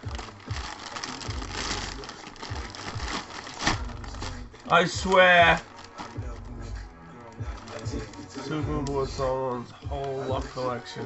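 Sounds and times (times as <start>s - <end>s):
plastic bag rustling and crinkling: 0.0s - 11.0s.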